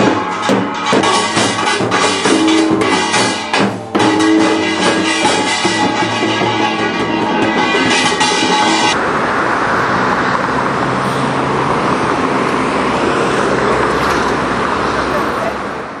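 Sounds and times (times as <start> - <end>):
music with drum: 0.0 - 9.0
street traffic noise: 0.0 - 16.0.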